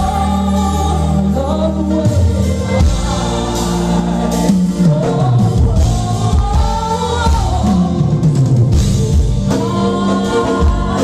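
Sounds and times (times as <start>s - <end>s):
woman singing into microphone: 0.0s - 8.6s, 9.4s - 11.0s
band playing pop ballad: 0.0s - 11.0s.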